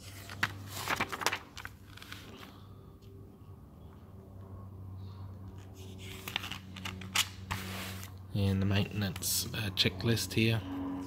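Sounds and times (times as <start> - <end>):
paper rustling and crinkling: 0.0 - 2.6, 5.8 - 8.1
steady low hum: 0.0 - 11.0.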